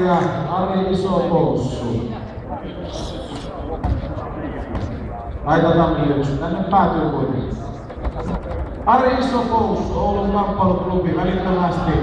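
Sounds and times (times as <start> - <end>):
indistinct voices in a hall: 0.0 - 12.0.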